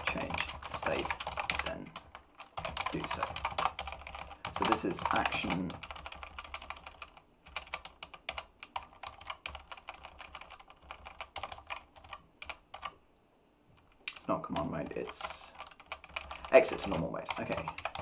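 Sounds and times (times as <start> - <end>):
computer keyboard typing: 0.0 - 13.0, 13.8 - 18.0.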